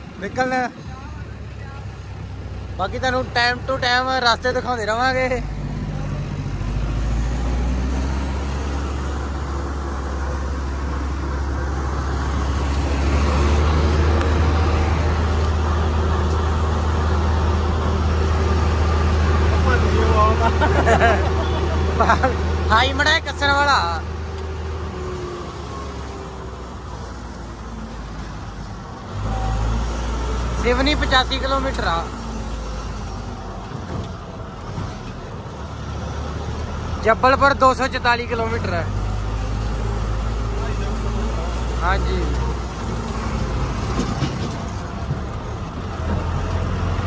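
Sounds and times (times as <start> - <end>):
diesel engine droning: 0.0 - 47.0.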